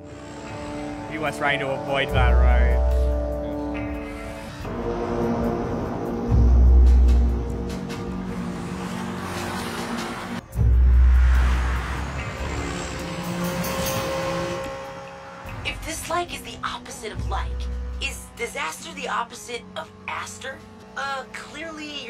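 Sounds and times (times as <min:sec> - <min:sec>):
cars and trucks driving: 0:00.0 - 0:22.0
tense orchestral music: 0:00.0 - 0:22.0.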